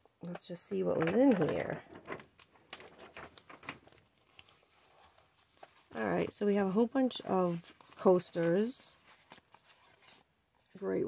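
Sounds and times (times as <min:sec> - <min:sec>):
plastic sleeve rustling: 0:00.2 - 0:10.8
cardboard coasters clicking: 0:00.9 - 0:04.0.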